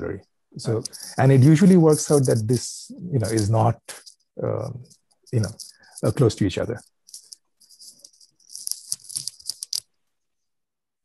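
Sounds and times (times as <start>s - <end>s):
irregular rattling rustling noise: 3.2s - 9.8s.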